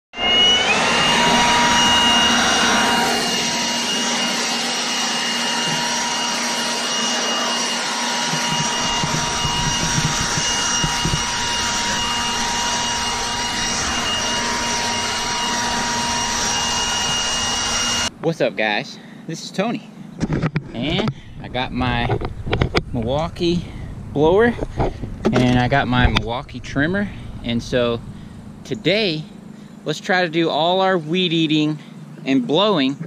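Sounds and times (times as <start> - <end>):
leaf blower motor whine: 0.2 - 18.3, 19.9 - 32.6.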